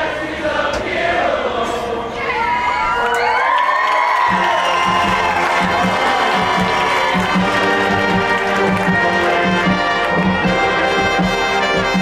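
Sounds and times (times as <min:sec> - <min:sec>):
marching band held chord: 0:00.0 - 0:02.3, 0:04.3 - 0:12.0
crowd cheering and shouting: 0:02.1 - 0:10.6.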